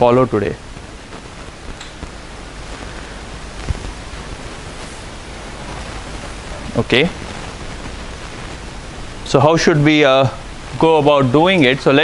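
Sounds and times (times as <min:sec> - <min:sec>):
man speaking: 0:00.0 - 0:00.6, 0:06.6 - 0:07.2, 0:09.3 - 0:12.0
room noise hiss: 0:00.0 - 0:12.0.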